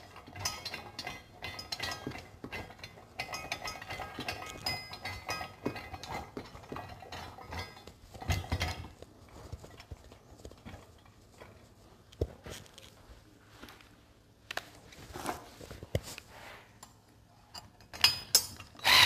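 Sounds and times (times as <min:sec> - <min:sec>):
metallic clinks and clanks: 0:00.0 - 0:09.0.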